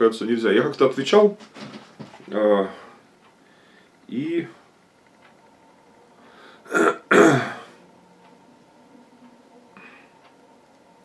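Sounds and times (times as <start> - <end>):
man clearing his throat: 6.7 - 7.7.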